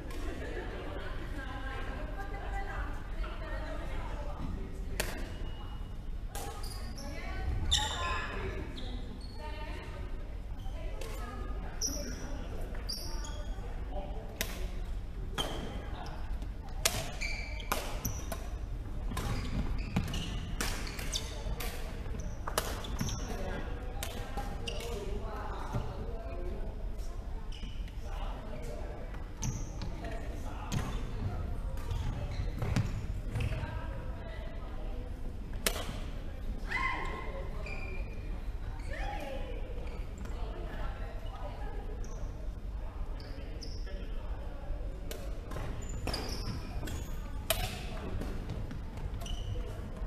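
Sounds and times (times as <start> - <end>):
voices in a hall: 0.0 - 50.0
rackets striking shuttlecock: 35.6 - 36.0.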